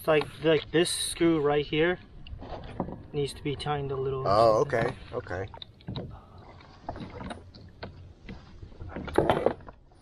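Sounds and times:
low water and wind rumble: 0:00.0 - 0:10.0.

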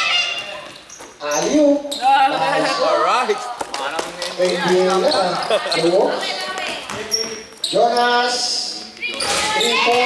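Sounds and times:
basketball bouncing on floor: 0:06.5 - 0:07.4.

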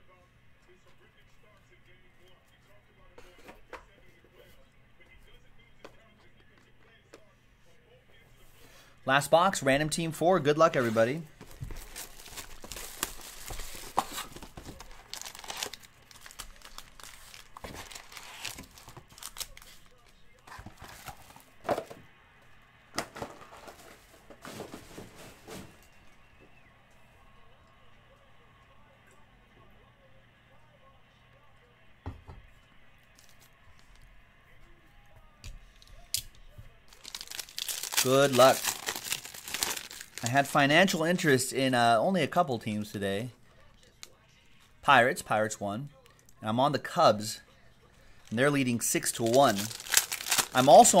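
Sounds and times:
plastic shrink-wrap crinkling and tearing: 0:11.6 - 0:20.1, 0:36.9 - 0:40.6, 0:48.2 - 0:51.0.

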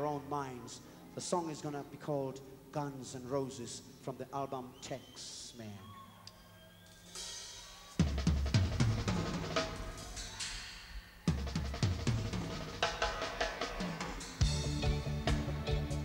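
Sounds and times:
drum kit playing: 0:07.2 - 0:16.0
low bass notes: 0:14.4 - 0:16.0.

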